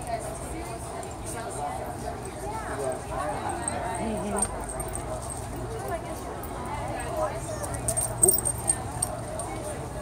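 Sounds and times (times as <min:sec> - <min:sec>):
outdoor crowd murmur: 0:00.0 - 0:10.0
people talking: 0:00.0 - 0:10.0.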